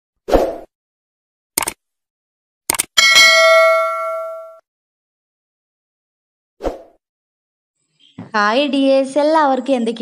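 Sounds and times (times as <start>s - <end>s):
quick clicks: 1.6s - 1.8s, 2.7s - 3.0s
bell-like ding: 3.0s - 4.6s.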